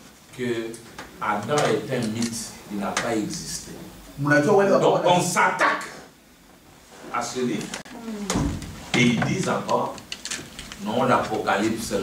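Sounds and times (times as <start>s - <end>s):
man speaking in echoing room: 0.3s - 6.2s, 7.0s - 7.8s, 8.8s - 10.2s, 10.8s - 12.0s.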